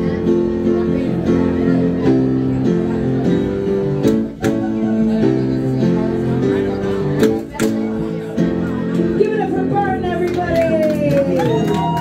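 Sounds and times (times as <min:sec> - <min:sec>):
instrumental held chords: 0:00.0 - 0:10.7
sharp hand claps: 0:10.2 - 0:12.0.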